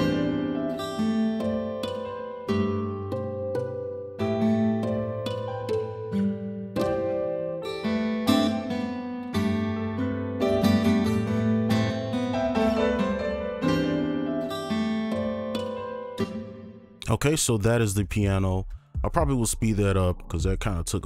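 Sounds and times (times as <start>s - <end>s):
piano melody over low chords: 0.0s - 17.0s.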